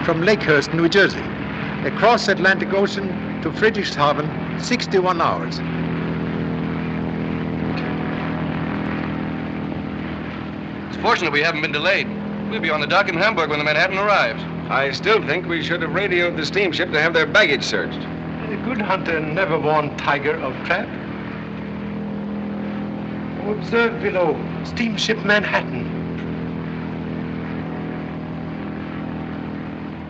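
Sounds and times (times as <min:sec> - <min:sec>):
propeller engines droning: 0:00.0 - 0:30.0.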